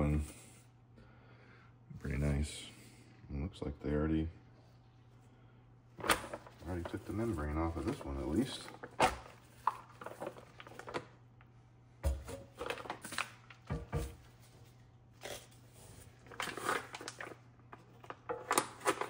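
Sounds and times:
plastic packaging rustling: 6.0 - 11.2, 12.0 - 19.0.

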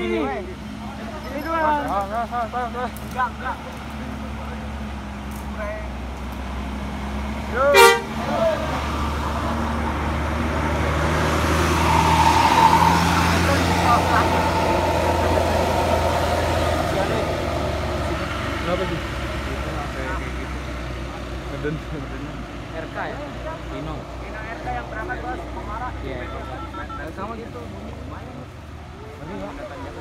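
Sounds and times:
diesel bus engine droning: 0.0 - 26.4
diesel bus engine idling: 12.8 - 25.8.

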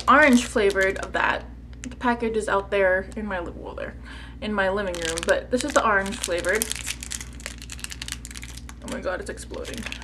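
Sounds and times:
plastic wrapper crinkling: 0.0 - 1.2, 4.8 - 10.0.

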